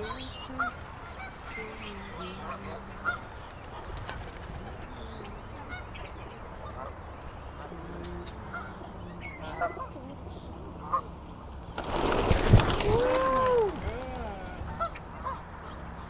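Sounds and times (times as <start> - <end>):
geese honking: 0.0 - 16.0.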